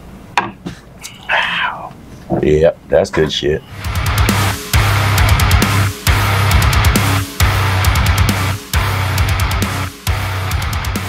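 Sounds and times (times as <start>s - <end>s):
glass set down on wooden bar: 0.4s - 0.8s.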